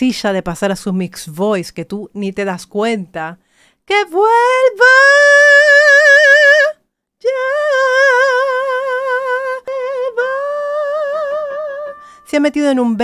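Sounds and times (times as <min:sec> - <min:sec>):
woman singing high notes: 0:03.9 - 0:13.0.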